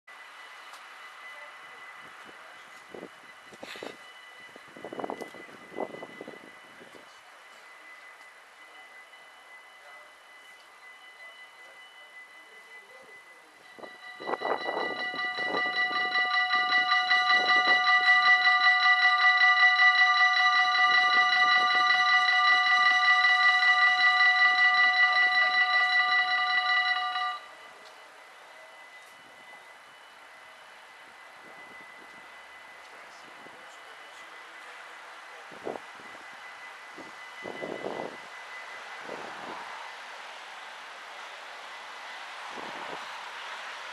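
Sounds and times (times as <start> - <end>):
level crossing bells ringing: 0.2 - 38.8.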